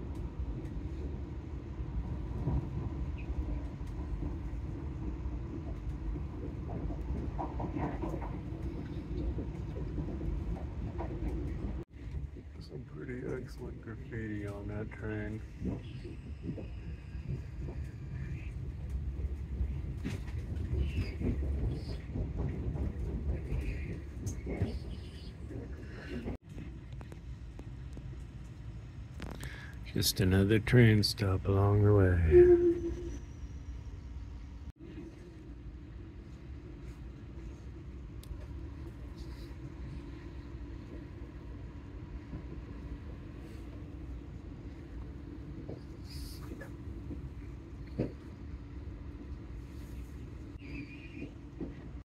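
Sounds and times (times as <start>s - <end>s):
train wheels rumbling on track: 0.0s - 52.0s.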